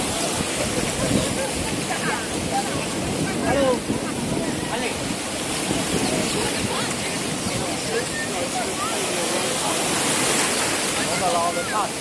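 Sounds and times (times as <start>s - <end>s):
ocean waves breaking: 0.0s - 12.0s.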